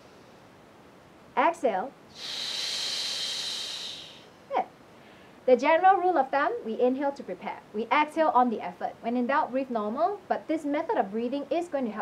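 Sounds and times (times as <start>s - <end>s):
forceful shushing exhale: 2.1s - 4.4s.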